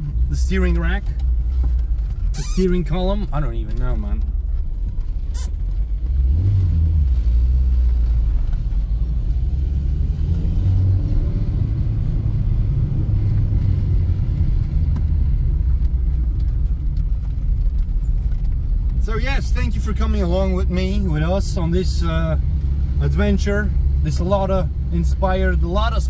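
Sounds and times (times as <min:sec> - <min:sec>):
car engine rumble: 0:00.0 - 0:26.0
road noise: 0:00.0 - 0:26.0.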